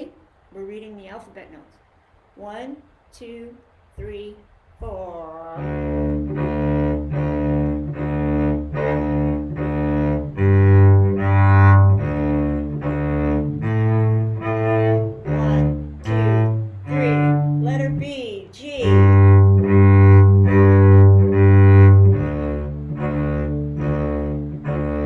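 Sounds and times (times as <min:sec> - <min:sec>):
cello bowed bass notes: 0:04.8 - 0:25.0.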